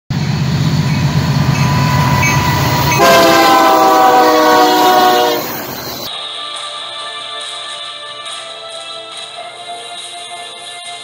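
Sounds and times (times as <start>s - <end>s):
diesel locomotives rumbling: 0.1s - 6.1s
locomotive horn chord: 0.2s - 6.1s.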